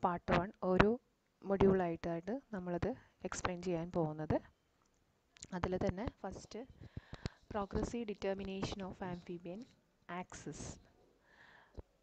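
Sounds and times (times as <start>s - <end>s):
woman speaking: 0.0s - 4.5s, 5.4s - 6.7s, 7.5s - 10.9s
sharp clicks: 7.0s - 7.4s.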